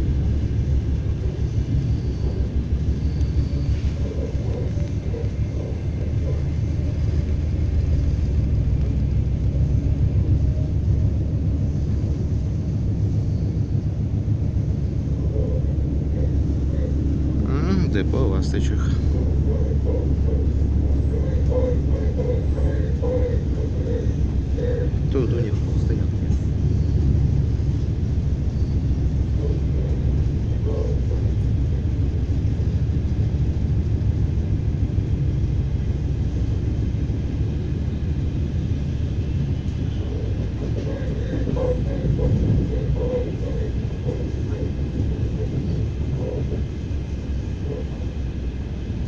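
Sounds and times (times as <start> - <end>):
electric train rumbling: 0.0 - 49.0.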